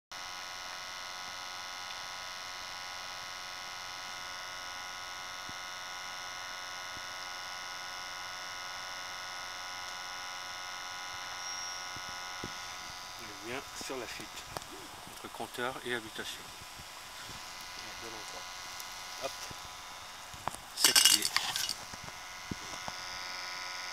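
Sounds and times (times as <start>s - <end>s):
steady buzzing hum: 0.2s - 23.9s.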